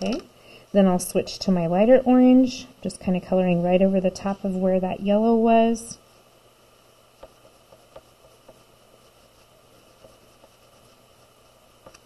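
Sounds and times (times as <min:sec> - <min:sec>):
steady low hiss: 0:00.0 - 0:12.0
chalk pastel scratching on paper: 0:07.2 - 0:12.0.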